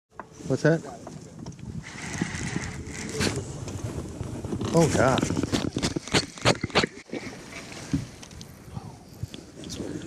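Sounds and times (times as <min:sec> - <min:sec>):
wind on microphone: 0:00.3 - 0:10.0.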